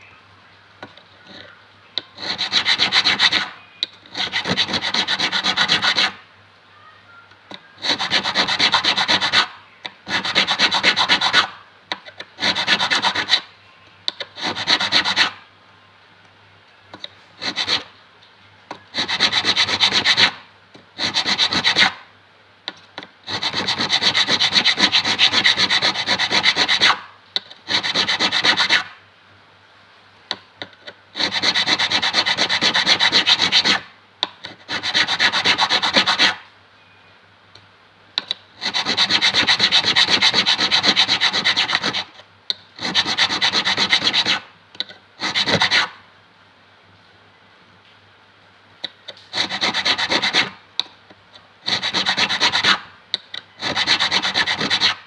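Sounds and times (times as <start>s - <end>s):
file rasping on metal fret: 2.2s - 3.5s, 4.1s - 6.2s, 7.8s - 9.5s, 12.4s - 13.4s, 27.7s - 28.9s, 31.2s - 33.8s, 34.5s - 36.4s, 38.6s - 42.1s, 42.8s - 44.4s, 45.2s - 45.9s, 49.4s - 50.6s, 51.7s - 52.8s, 53.6s - 55.0s.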